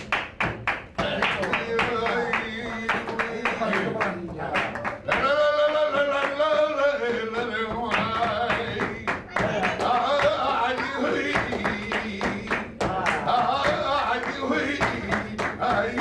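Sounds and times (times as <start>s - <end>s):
rhythmic hand-clapping: 0.0s - 16.0s.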